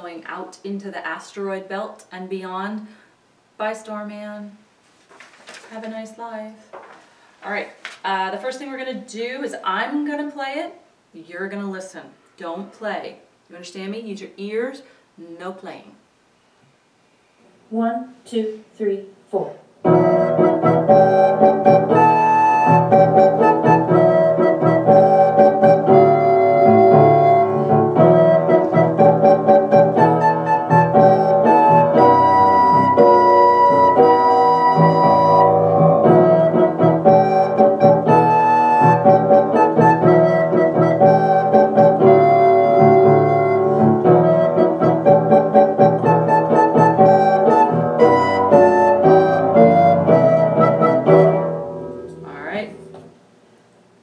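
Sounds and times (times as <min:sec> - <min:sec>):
keyboard accompaniment: 0:19.8 - 0:52.2
recorder playing slow tune: 0:19.9 - 0:51.3.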